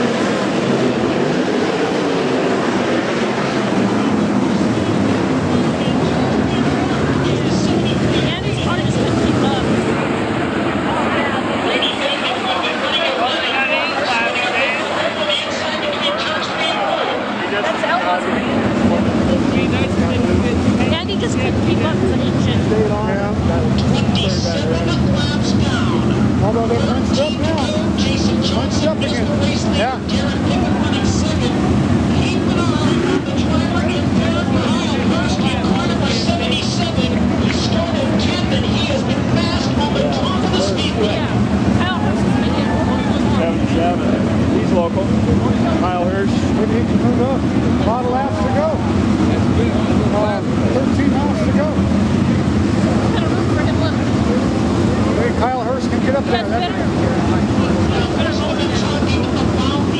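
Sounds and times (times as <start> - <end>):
crowd chatter: 0.0 - 59.9
race car engines droning: 0.0 - 59.9.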